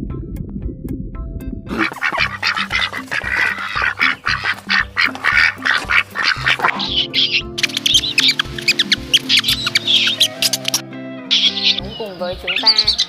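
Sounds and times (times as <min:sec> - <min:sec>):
music with steady beat: 0:00.0 - 0:13.0
ducks calling: 0:01.7 - 0:13.0
high chirps: 0:01.7 - 0:13.0.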